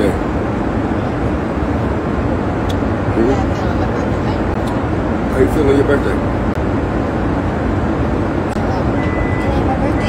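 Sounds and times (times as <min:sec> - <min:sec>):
jet cabin drone: 0:00.0 - 0:10.0.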